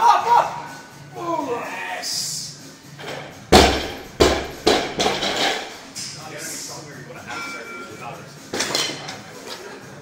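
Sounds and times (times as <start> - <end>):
barbell bouncing: 3.5 - 5.6
barbell crashing onto platform: 3.5 - 5.7.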